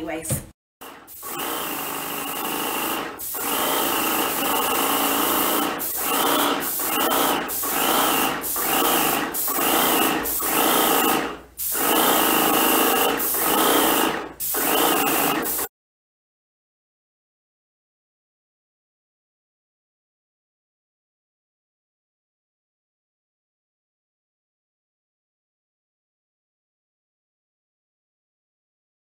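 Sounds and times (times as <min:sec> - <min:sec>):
paint sprayer pump motor: 0:00.8 - 0:15.7.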